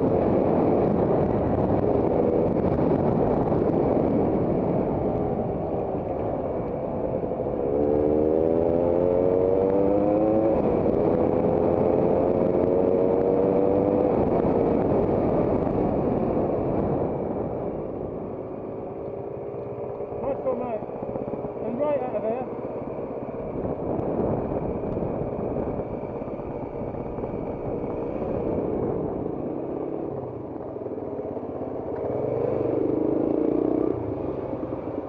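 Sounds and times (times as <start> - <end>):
wind noise on microphone: 0.0 - 18.8, 23.4 - 35.0
motorcycle engine revving: 0.0 - 35.0.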